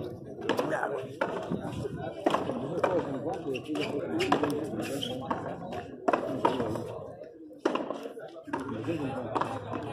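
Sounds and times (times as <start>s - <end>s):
people talking: 0.0s - 9.9s.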